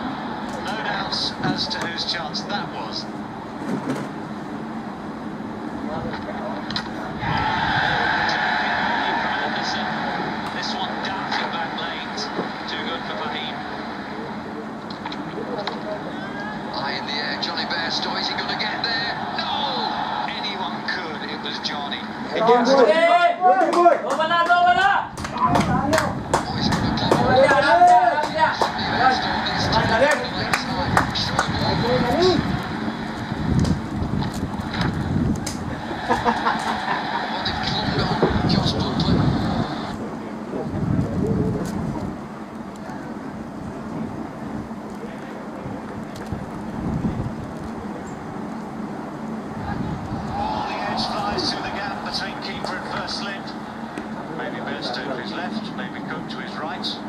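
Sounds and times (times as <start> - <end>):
outdoor background noise: 0.0 - 57.0
crowd shouting and calling: 6.7 - 14.1, 17.8 - 33.4, 35.6 - 39.9, 49.5 - 54.6.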